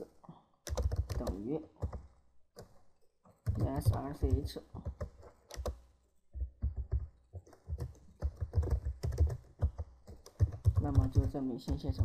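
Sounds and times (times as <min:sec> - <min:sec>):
typing on computer keyboard: 0:00.6 - 0:02.8, 0:03.4 - 0:05.8, 0:06.4 - 0:12.0.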